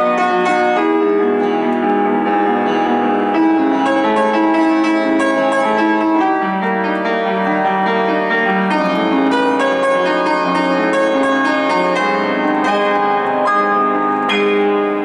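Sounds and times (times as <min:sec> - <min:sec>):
piano playing: 0:00.0 - 0:15.0.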